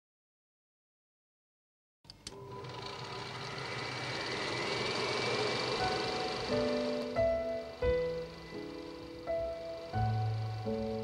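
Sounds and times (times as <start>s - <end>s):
mechanical clicks: 2.1s - 2.4s
film projector whirring: 2.1s - 11.0s
held musical notes: 2.7s - 11.0s.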